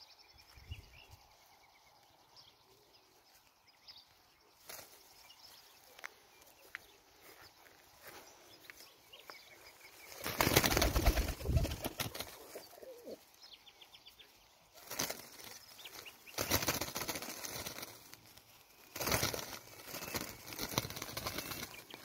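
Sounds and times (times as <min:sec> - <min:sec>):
pigeons flapping wings: 0:10.2 - 0:12.7, 0:14.8 - 0:22.0.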